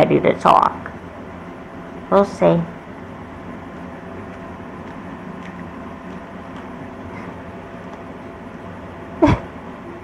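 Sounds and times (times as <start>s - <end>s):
low room hum and hiss: 0.0s - 10.0s.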